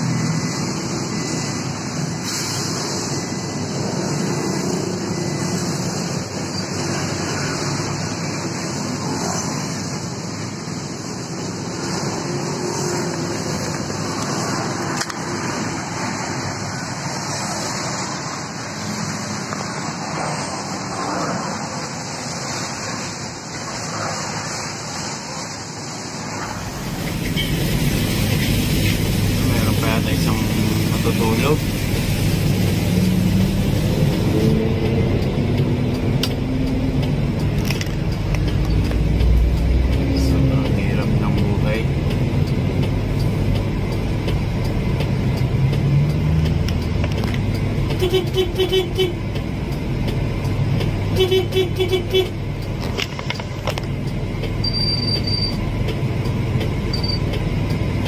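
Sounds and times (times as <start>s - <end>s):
vehicle road noise from inside: 0.0s - 58.0s.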